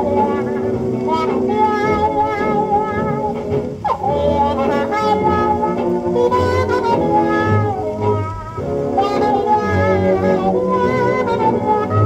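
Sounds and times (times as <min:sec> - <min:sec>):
muted trumpet wailing blues line: 0:00.0 - 0:12.0.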